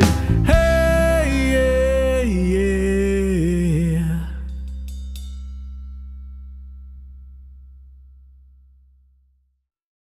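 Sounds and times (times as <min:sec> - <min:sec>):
band chord ringing out: 0:00.0 - 0:08.3.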